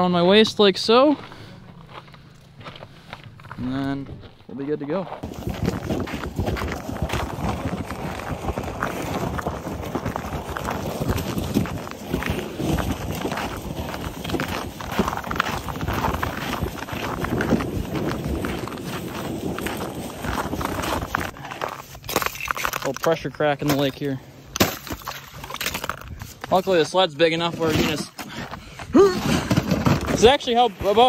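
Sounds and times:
footsteps crunching on snowy ice: 0.2s - 28.8s, 29.6s - 31.0s
sled scraping on ice: 5.2s - 23.2s, 25.0s - 31.0s.

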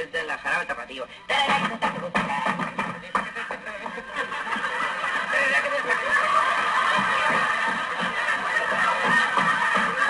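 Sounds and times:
audience laughing loudly: 3.6s - 10.0s.

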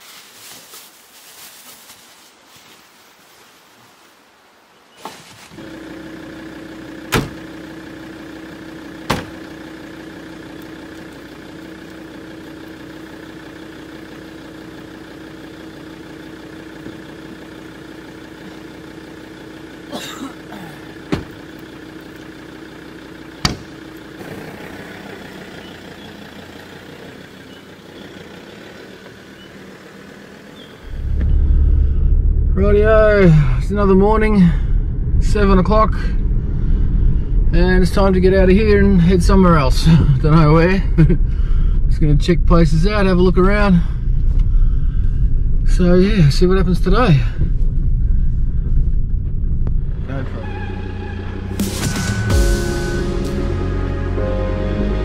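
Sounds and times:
car engine idling: 5.6s - 55.0s
doors slamming: 7.1s - 7.4s, 9.1s - 9.4s, 21.1s - 21.4s.

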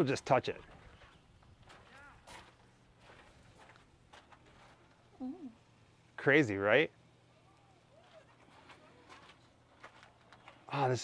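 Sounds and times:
faint footsteps on paved path: 0.0s - 5.1s, 8.0s - 11.0s.

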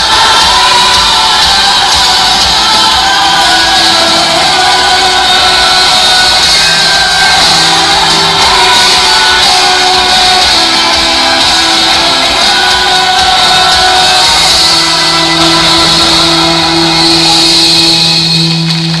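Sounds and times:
loud show music: 0.0s - 19.0s.

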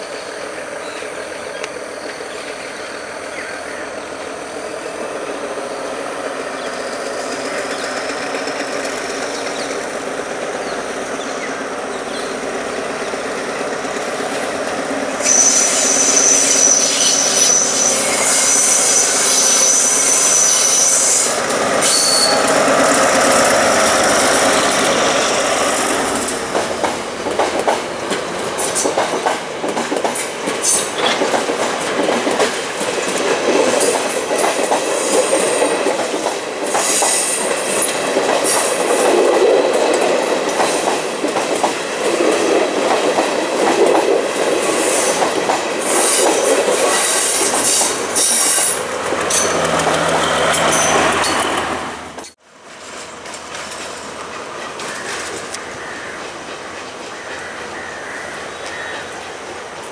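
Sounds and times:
train wheels rumbling on rail: 0.0s - 59.9s
high wheel squeal: 15.1s - 23.4s, 45.8s - 51.6s
clicking over rail joints: 45.1s - 57.7s.

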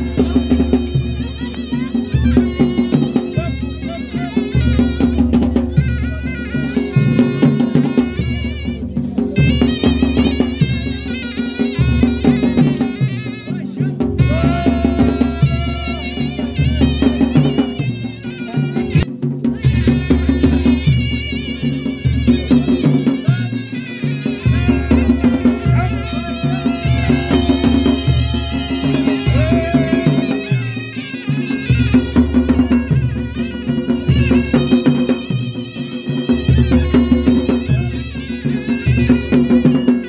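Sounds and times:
drum beat: 0.0s - 40.0s
wavering folk melody: 19.6s - 40.0s.

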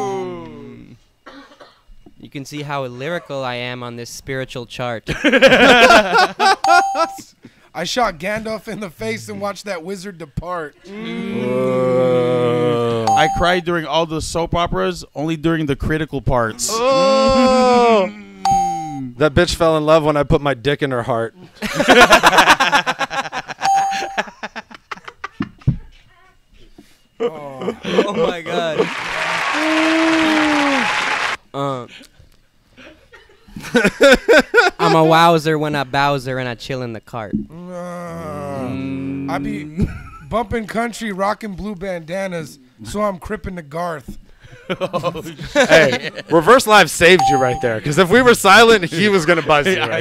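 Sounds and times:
man's drawn-out ooh: 0.0s - 1.0s, 10.9s - 13.1s, 16.6s - 18.5s, 29.2s - 31.3s, 37.6s - 39.6s
men laughing together: 5.1s - 7.2s, 21.5s - 25.7s, 27.2s - 30.9s, 32.8s - 35.1s, 44.4s - 46.4s, 48.9s - 50.0s
short steady beep: 6.6s - 7.3s, 13.1s - 13.6s, 18.4s - 19.2s, 23.6s - 24.3s, 47.2s - 47.9s.

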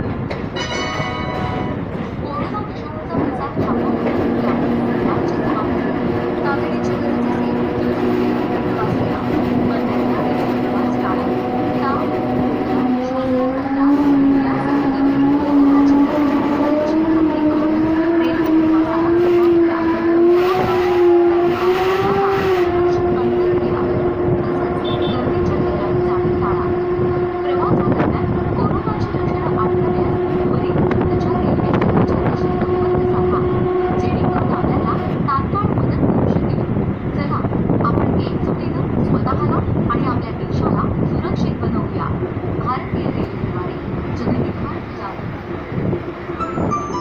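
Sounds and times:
electric train wheel rumble: 0.0s - 47.0s.

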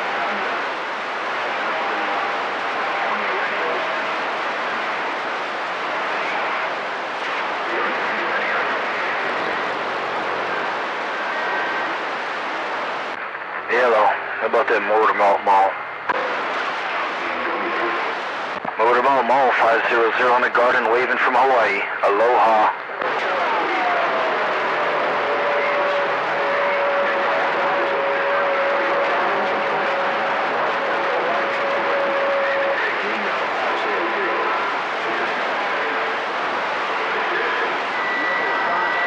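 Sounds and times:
radio static hiss: 0.0s - 39.0s.

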